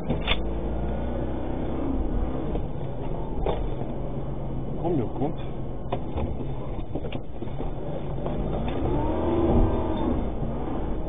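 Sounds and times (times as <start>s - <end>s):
engine whine revving: 0.0s - 4.9s, 7.6s - 11.0s
vehicle engine and road rumble: 0.0s - 11.0s.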